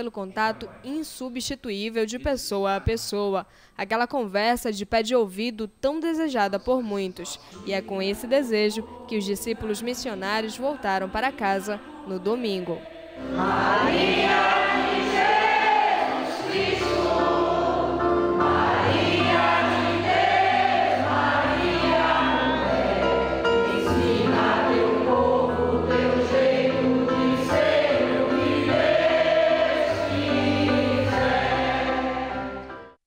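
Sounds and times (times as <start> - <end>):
choir singing a hymn: 7.6 - 33.0.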